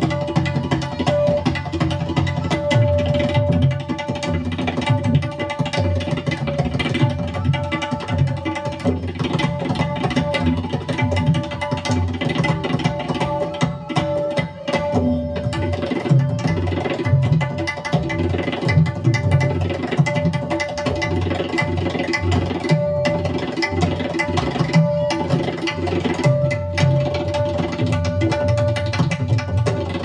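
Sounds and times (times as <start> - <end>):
tabla drumming: 0.0 - 30.0.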